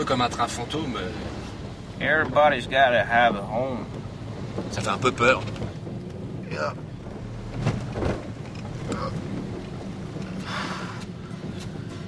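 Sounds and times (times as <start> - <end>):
car engine rumble: 0.0 - 12.0
road noise inside car: 0.0 - 12.0
soft bumps: 0.0 - 12.0.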